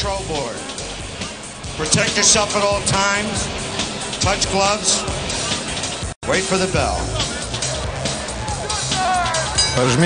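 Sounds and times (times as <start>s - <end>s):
background music: 0.0s - 10.0s
man speaking into a microphone: 1.8s - 3.5s.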